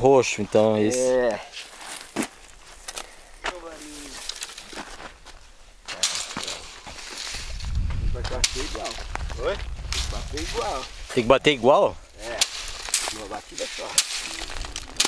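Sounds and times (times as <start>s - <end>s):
stick knocking dry plants: 5.9s - 9.2s, 9.9s - 11.2s, 12.2s - 15.0s.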